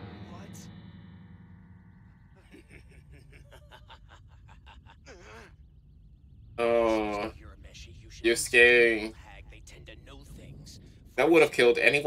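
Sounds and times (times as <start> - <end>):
sighing cry: 5.0 - 5.6.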